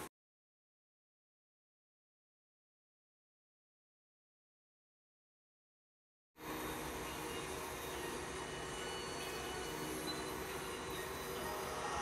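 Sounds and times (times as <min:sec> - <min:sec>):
steady background noise: 0:06.4 - 0:12.0
faint held tones: 0:06.6 - 0:12.0.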